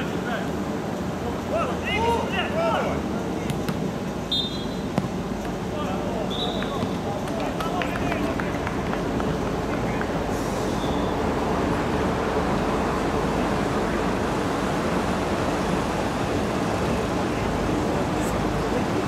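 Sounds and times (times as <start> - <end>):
voices of players and spectators: 0.0 - 11.2
steady rushing noise: 6.9 - 19.0.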